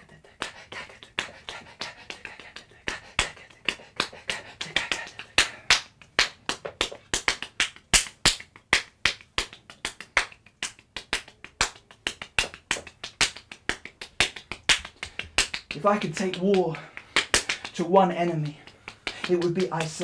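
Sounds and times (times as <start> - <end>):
hand claps: 0.0 - 20.0
finger snaps: 0.2 - 20.0.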